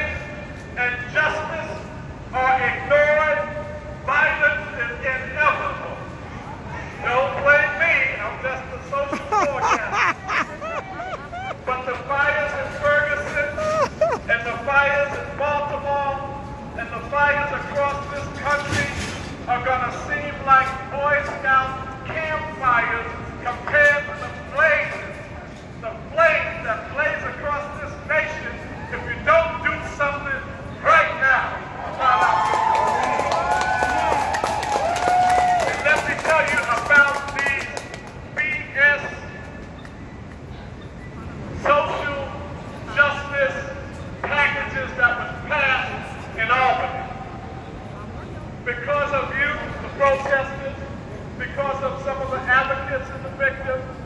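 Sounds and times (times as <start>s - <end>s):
crowd: 0.0s - 54.0s.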